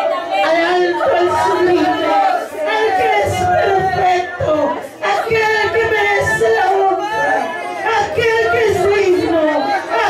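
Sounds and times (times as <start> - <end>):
woman praying into a microphone: 0.0 - 10.0.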